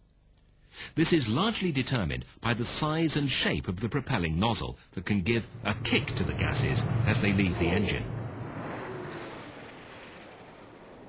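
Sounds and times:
jet aircraft flying past: 0:05.3 - 0:11.0.

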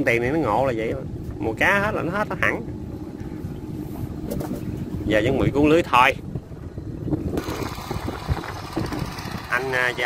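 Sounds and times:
low steady rumble: 0:00.0 - 0:10.0
wind: 0:00.0 - 0:10.0.

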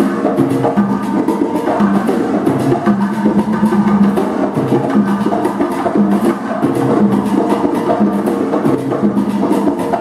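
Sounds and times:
congas and timbales percussion: 0:00.0 - 0:10.0
salsa band playing: 0:00.0 - 0:10.0.

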